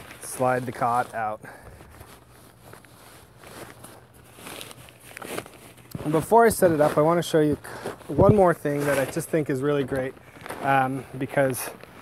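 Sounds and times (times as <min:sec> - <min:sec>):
nylon bag rustling and scraping: 0:00.0 - 0:12.0.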